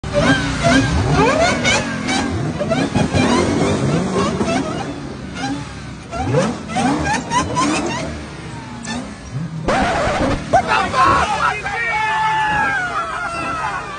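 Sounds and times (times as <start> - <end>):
car engine revving: 0.0 - 11.4
voices: 9.8 - 13.9
people shouting excitedly: 10.5 - 13.9.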